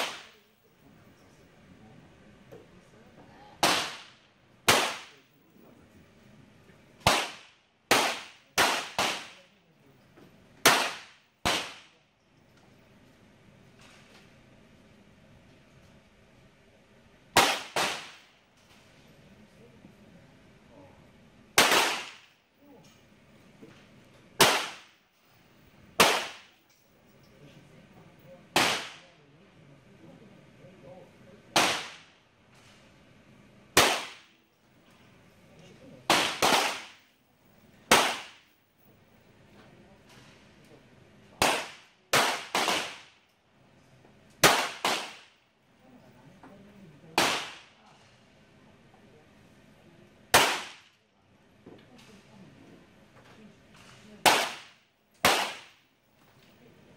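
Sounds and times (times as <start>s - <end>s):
pistol shots with echo: 0.0s - 0.4s, 3.6s - 5.2s, 7.0s - 9.4s, 10.6s - 11.9s, 17.4s - 18.3s, 21.6s - 22.3s, 24.4s - 25.0s, 26.0s - 26.5s, 28.6s - 29.2s, 31.6s - 32.2s, 33.8s - 34.3s, 36.1s - 37.0s, 37.9s - 38.5s, 41.4s - 43.2s, 44.4s - 45.4s, 47.2s - 47.8s, 50.3s - 50.9s, 54.2s - 55.8s.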